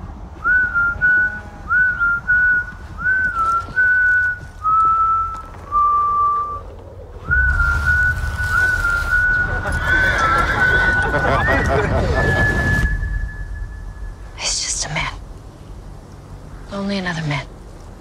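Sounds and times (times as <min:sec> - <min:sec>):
low rumble: 0:00.0 - 0:18.0
person whistling a tune: 0:00.4 - 0:14.0.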